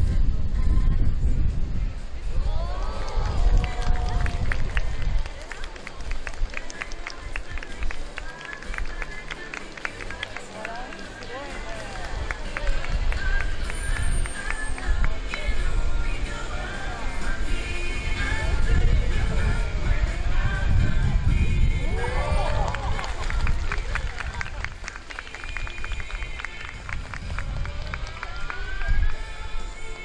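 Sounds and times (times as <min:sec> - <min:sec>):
wind on microphone: 0:00.0 - 0:09.2, 0:11.9 - 0:30.0
music over loudspeakers: 0:00.0 - 0:30.0
voice over loudspeakers: 0:09.2 - 0:13.2.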